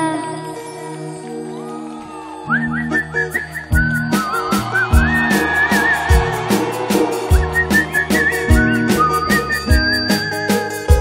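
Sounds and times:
whistle-like lead melody: 0:01.5 - 0:11.0
live band music: 0:02.9 - 0:11.0.

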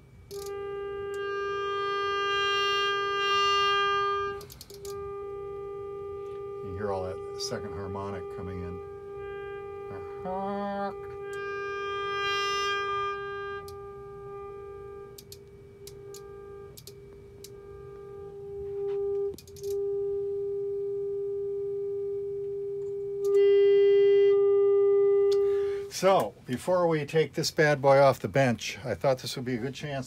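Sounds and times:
test tone through guitar amp: 0:00.0 - 0:27.3.

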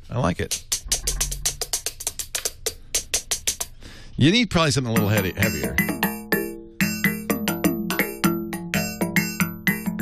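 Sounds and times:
electronic drum pad hits: 0:00.7 - 0:02.0, 0:05.0 - 0:10.0
low booming tone: 0:00.8 - 0:01.6.

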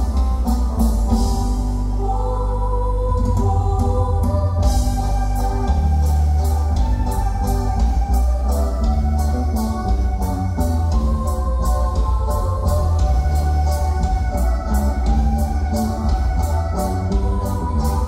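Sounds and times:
heavy bass line: 0:00.0 - 0:18.0.

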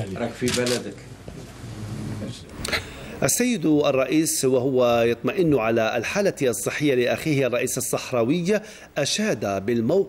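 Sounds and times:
steady room noise: 0:00.0 - 0:10.0.

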